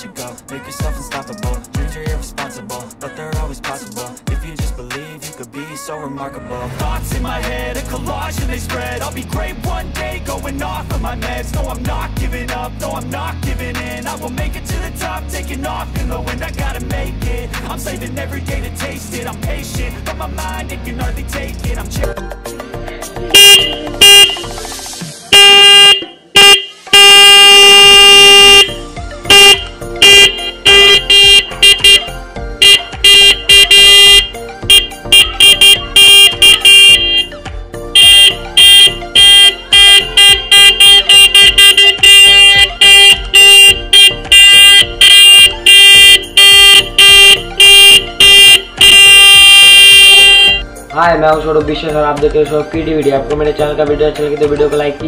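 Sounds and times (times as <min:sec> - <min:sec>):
electric bicycle horn honking: 0:23.3 - 0:24.6, 0:25.3 - 0:50.6.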